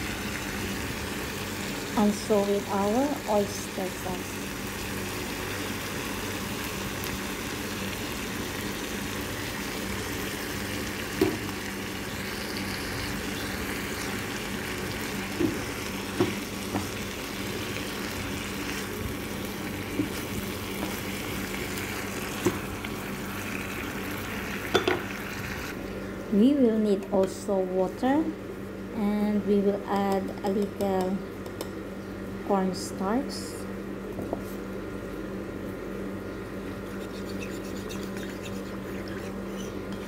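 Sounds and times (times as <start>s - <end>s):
vegetables sizzling in frying pan: 0.0s - 25.7s.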